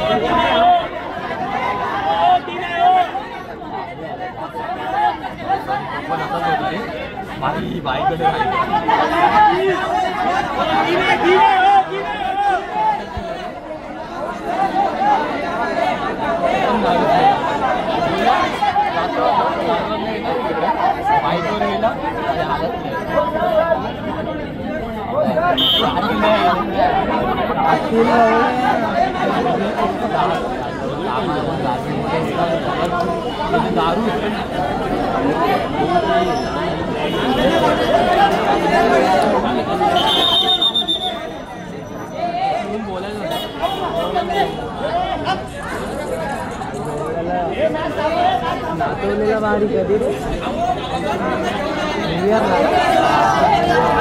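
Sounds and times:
chatter of voices: 0.0 - 54.0.

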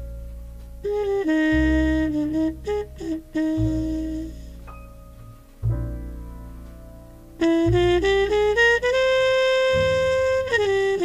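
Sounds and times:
saxophone melody: 0.8 - 5.0, 7.4 - 11.0.

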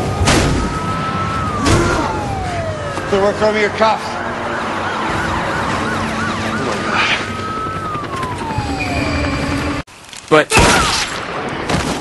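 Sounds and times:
emergency sirens wailing: 0.0 - 9.9.

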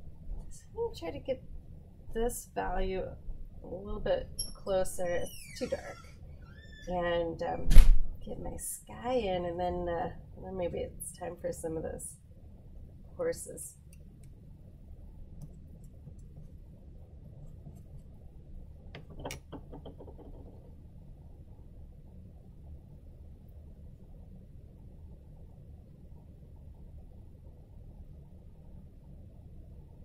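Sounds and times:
low room hum: 0.0 - 30.0.

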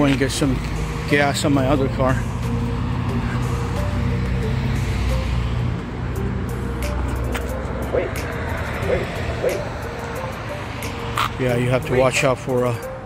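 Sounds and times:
background music: 0.0 - 13.0
road traffic driving past: 0.0 - 13.0.

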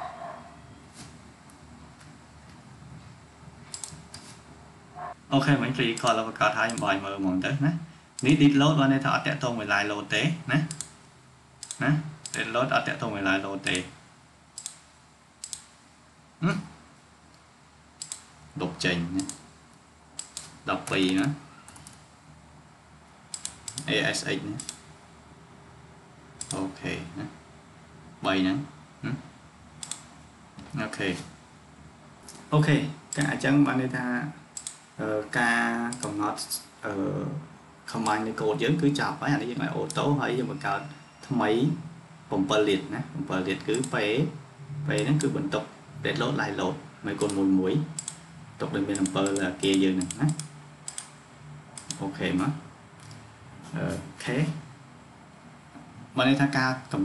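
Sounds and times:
mouse and keyboard clicks: 3.7 - 4.3, 10.7 - 11.0, 14.6 - 14.8, 15.4 - 15.7, 18.0 - 18.3, 20.2 - 22.0, 23.3 - 23.9, 29.8 - 30.1, 34.6 - 34.8, 48.0 - 48.2, 48.9 - 51.2, 51.8 - 52.0.

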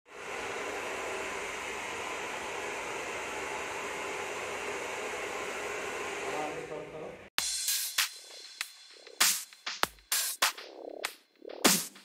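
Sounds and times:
hair dryer blowing: 0.1 - 7.2.

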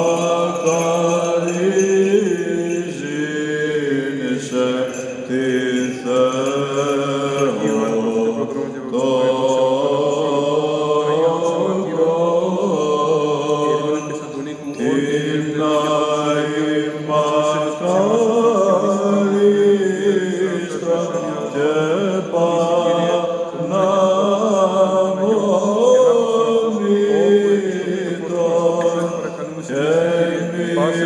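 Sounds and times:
voices singing a chant: 0.0 - 31.0.

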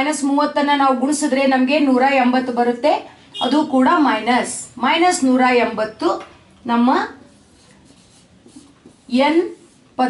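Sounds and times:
marker pen writing on whiteboard: 7.0 - 10.0.

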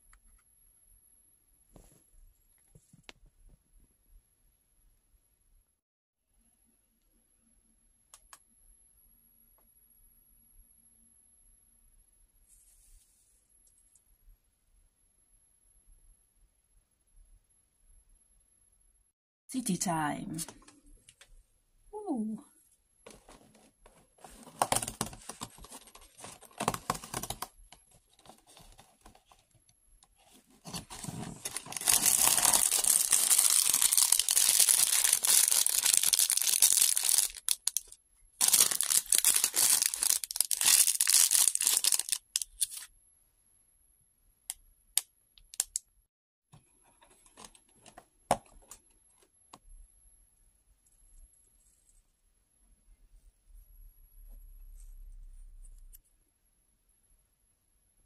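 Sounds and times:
plastic bag crinkling and tearing: 24.2 - 29.3, 30.3 - 42.9
small plastic pieces clicking: 45.0 - 45.8.

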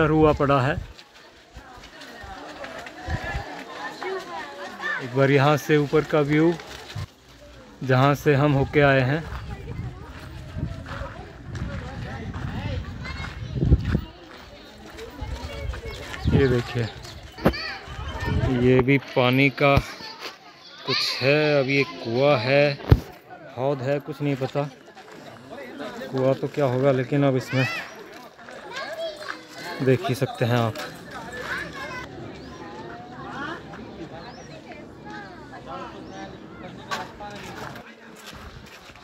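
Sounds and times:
people talking: 0.0 - 7.1, 7.8 - 38.8
distant voices of people and children: 0.0 - 39.0.

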